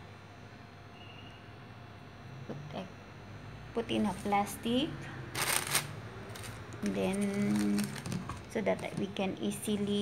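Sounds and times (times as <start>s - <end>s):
plastic bag rustling: 5.3s - 10.0s.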